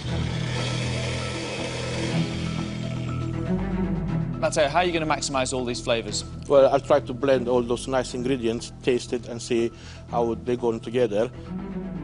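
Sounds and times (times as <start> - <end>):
blender motor running: 0.0 - 3.4
background music: 0.0 - 12.0.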